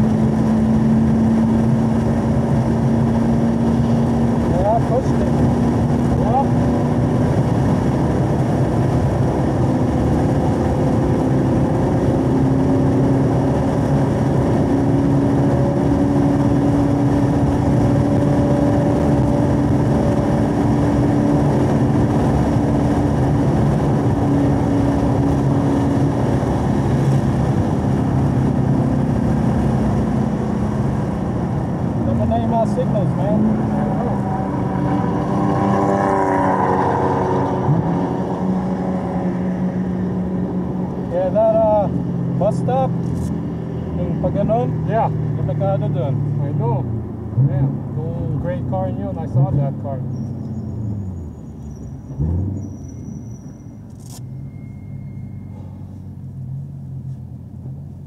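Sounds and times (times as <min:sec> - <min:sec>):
car engine heard from cabin: 0:00.0 - 0:58.0
road and wind noise: 0:00.0 - 0:58.0.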